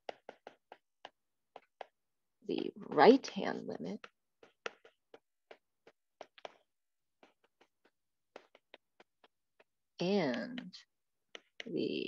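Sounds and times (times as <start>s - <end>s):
stylus tapping tablet screen: 0.0s - 12.0s.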